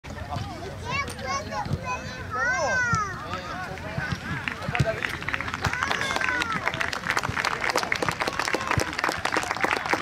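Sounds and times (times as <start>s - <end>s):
people clapping hands: 3.7s - 10.0s.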